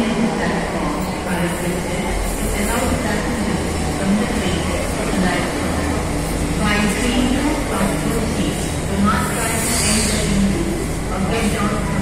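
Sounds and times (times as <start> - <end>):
train humming at platform: 0.0 - 12.0.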